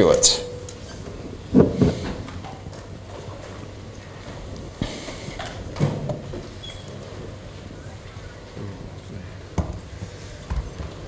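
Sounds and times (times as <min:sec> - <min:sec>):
room noise: 0:00.0 - 0:11.0.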